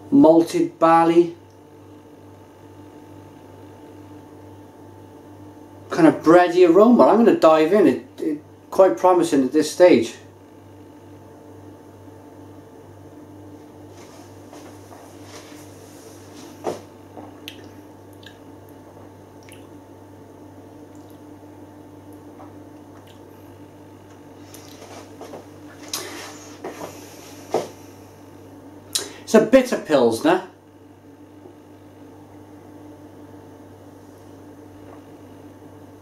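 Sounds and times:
steady low hum: 0.0s - 36.0s
person swallowing: 17.2s - 18.5s, 19.4s - 19.8s, 24.5s - 24.9s
lip-smacking: 17.4s - 18.8s, 19.4s - 19.8s, 20.9s - 21.3s, 22.1s - 23.3s, 24.1s - 24.9s, 25.8s - 26.2s, 28.9s - 29.2s
wet mouth sounds: 17.4s - 18.8s, 19.4s - 19.8s, 20.9s - 21.3s, 24.5s - 24.9s, 25.9s - 26.2s.

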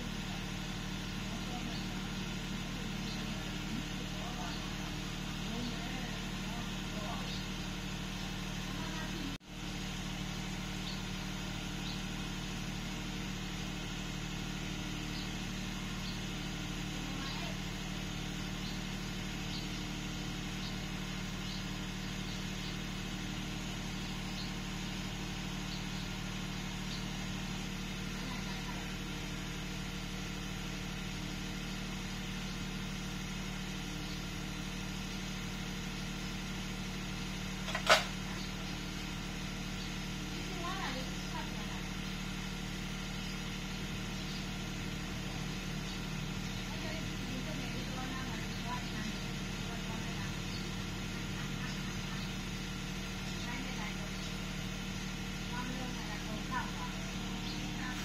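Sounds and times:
low mechanical hum: 0.0s - 58.0s.

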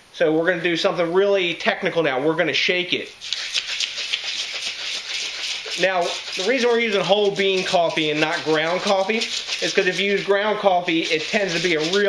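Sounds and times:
beans and liquid rattling in glass jug: 3.2s - 12.0s.

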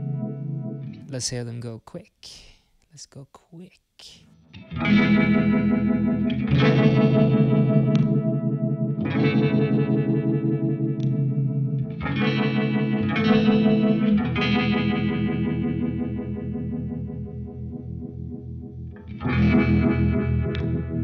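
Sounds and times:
electric guitar chords with vibe effect: 0.0s - 1.1s, 4.4s - 21.0s.

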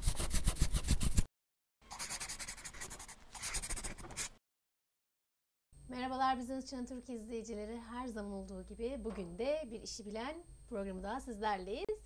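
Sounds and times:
pen scribbling on paper: 0.0s - 1.3s, 1.9s - 4.3s.

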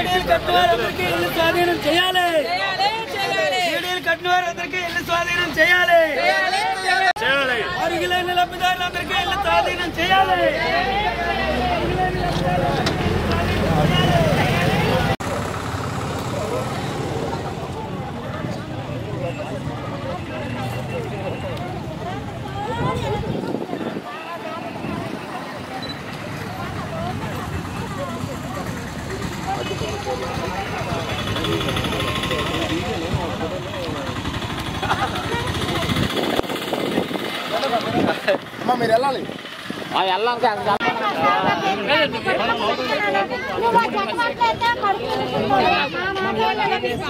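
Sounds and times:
indistinct voices: 0.0s - 47.0s
outdoor background noise: 0.0s - 47.0s
people talking: 0.0s - 47.0s.

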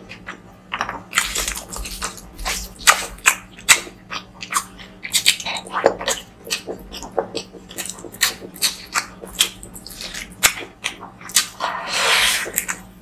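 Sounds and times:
wet chewing: 0.0s - 12.9s.

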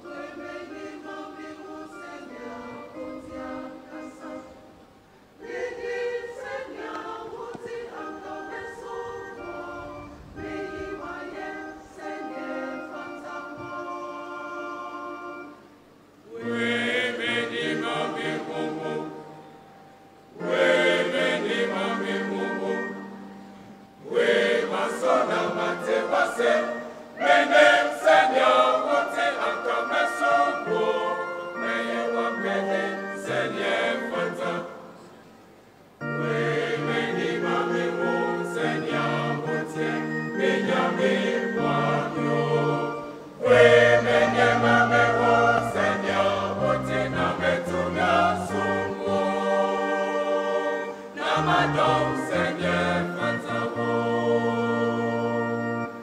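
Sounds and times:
mixed choir singing: 0.0s - 56.0s.

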